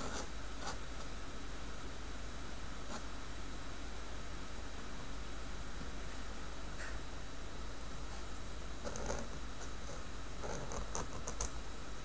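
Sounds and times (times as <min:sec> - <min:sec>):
pen nib scratching on paper: 0:00.0 - 0:00.8, 0:08.8 - 0:11.5.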